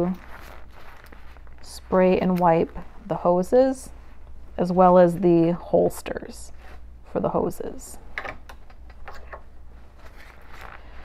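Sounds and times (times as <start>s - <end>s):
paper towel rubbing on hose: 0.0s - 2.2s
low steady hum: 0.0s - 11.0s.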